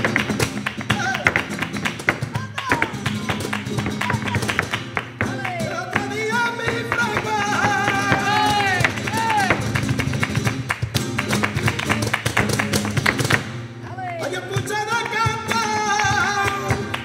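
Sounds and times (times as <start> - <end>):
flamenco guitar: 0.0 - 17.0
person singing: 2.3 - 9.6.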